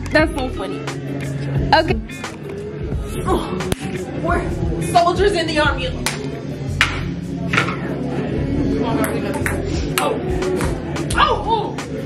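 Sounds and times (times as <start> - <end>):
background music: 0.0 - 12.0
table tennis ball taps: 9.0 - 10.8.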